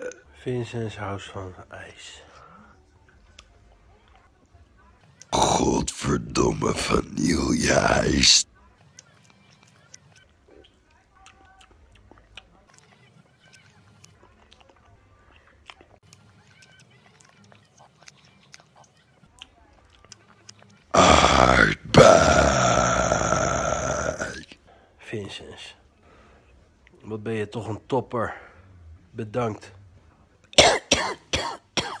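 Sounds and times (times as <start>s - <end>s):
mouth sounds eating ice cream: 5.2s - 24.6s
man coughing: 30.6s - 32.0s.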